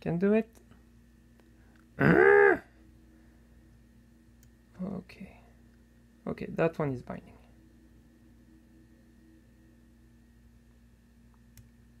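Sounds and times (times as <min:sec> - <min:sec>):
low steady hum: 0:00.0 - 0:12.0
man's breathy murmur: 0:02.0 - 0:02.7.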